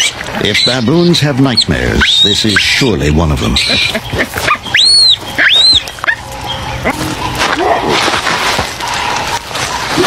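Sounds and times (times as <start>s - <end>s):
baboon distress calls: 0.0s - 8.0s.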